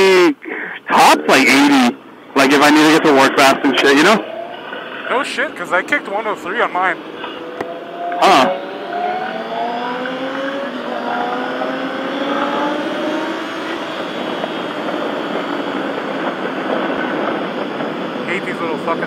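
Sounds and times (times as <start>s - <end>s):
motorcycle engine accelerating: 6.6s - 19.0s
wind noise: 7.0s - 19.0s.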